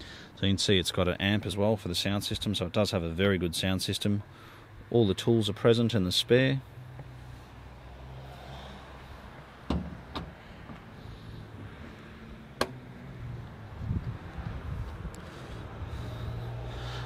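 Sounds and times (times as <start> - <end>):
car boot lid thump: 9.7 - 10.4.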